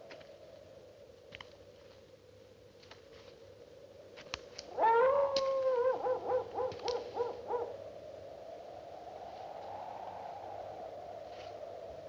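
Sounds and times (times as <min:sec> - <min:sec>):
long howling cry: 0:04.7 - 0:07.8.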